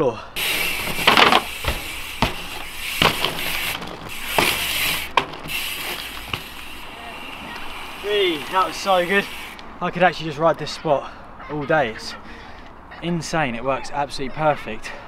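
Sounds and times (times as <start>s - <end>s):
bike wheels landing knocks: 0.4s - 7.7s
bike tyres rolling on tarmac: 0.4s - 10.8s.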